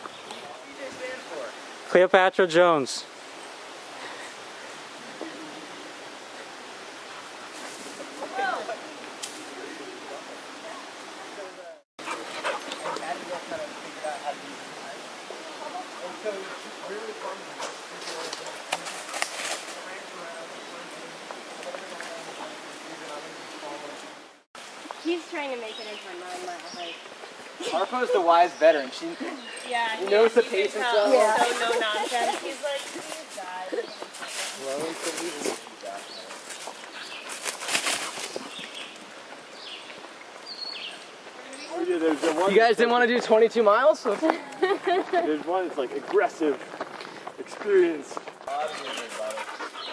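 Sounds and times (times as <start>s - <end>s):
footsteps crunching through dry leaves: 31.2s - 39.0s.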